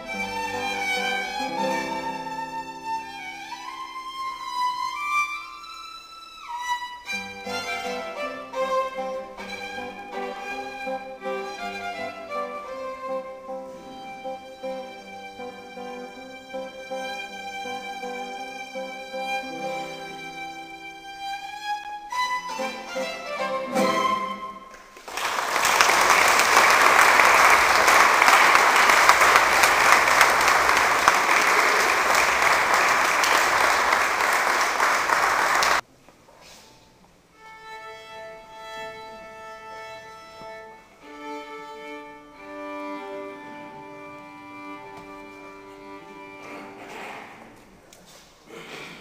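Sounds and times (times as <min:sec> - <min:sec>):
violin and guitar duo: 0:00.0 - 0:24.6, 0:37.4 - 0:47.2
violin tuning open strings: 0:00.0 - 0:24.7, 0:37.4 - 0:46.9
audience applause: 0:24.7 - 0:35.8.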